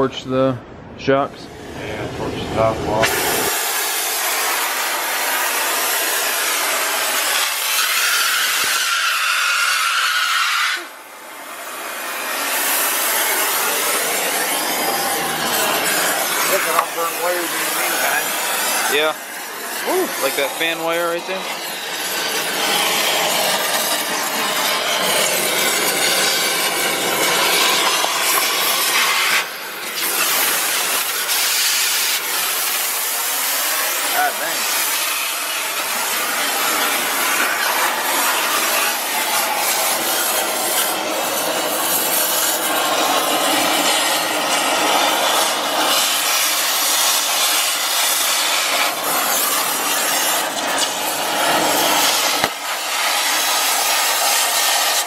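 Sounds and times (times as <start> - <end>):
cutting torch burning through metal: 1.5 - 55.0.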